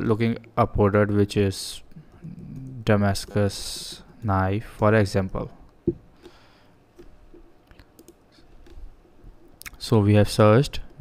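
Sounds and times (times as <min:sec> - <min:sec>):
keyboard and mouse clicks: 0:02.1 - 0:04.3, 0:05.2 - 0:08.9.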